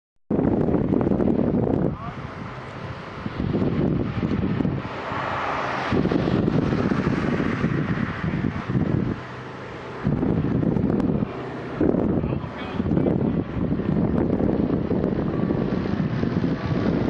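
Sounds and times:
distant jet airliner rumble: 0.3 - 17.0
wind buffeting microphone: 0.3 - 17.0.

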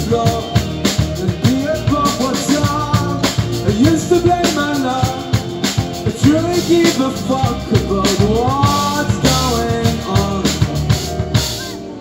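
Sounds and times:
drum kit beat: 0.0 - 11.8
guitar: 0.0 - 12.0
person singing: 6.0 - 12.0.

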